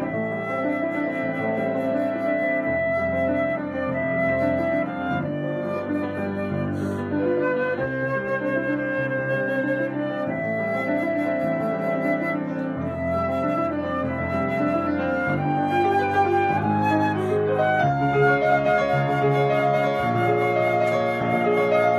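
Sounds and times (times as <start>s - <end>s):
flute playing held notes: 0.0s - 21.9s
piano accompaniment: 0.0s - 21.9s.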